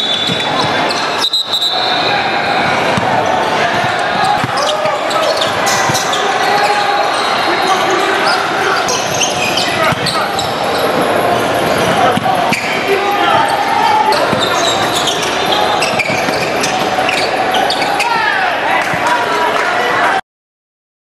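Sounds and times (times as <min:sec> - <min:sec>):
chatter of many people: 0:00.0 - 0:20.2
basketballs bouncing on hardwood: 0:02.9 - 0:04.9, 0:05.7 - 0:06.1.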